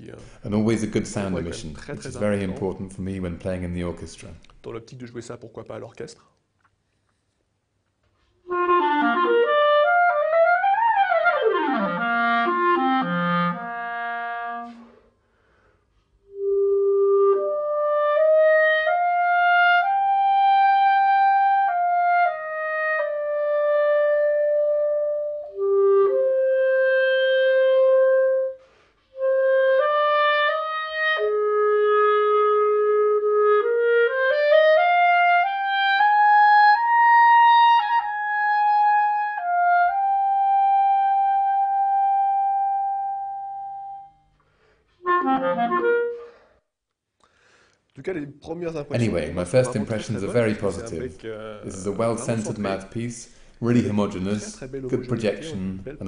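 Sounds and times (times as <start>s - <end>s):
solo clarinet: 8.4s - 15.2s, 16.2s - 44.3s, 45.0s - 46.6s.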